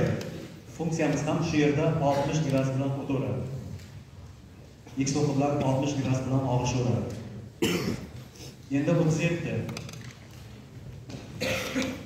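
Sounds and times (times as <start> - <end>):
person coughing: 7.6 - 8.2, 11.4 - 12.0.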